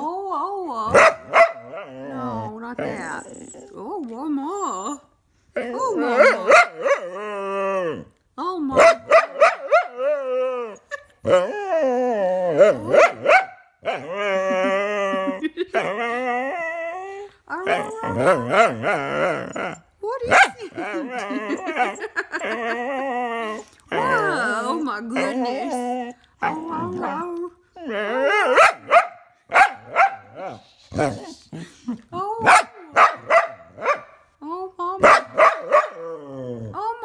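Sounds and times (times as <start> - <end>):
dog yowling barks: 0.8 - 2.2, 5.6 - 8.0, 8.7 - 11.6, 12.4 - 14.6, 17.6 - 22.8, 28.1 - 30.6, 32.4 - 34.2, 35.0 - 36.2
dog yowling and howling: 4.4 - 8.2, 8.8 - 29.0, 35.3 - 37.0.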